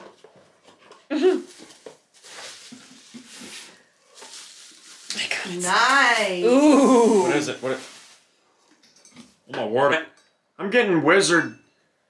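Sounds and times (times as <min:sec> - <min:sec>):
packaging rustling and crinkling: 0:00.0 - 0:08.4.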